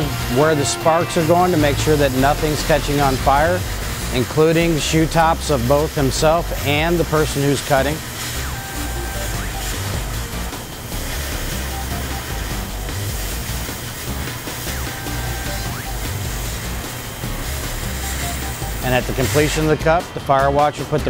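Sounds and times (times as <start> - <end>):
cutting torch hissing: 0.0 - 20.0
background music: 0.0 - 21.0.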